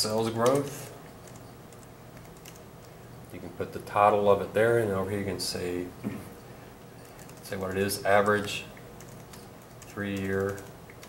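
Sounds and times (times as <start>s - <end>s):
typing on keyboard: 0.4s - 2.6s, 7.0s - 7.8s, 8.4s - 11.0s.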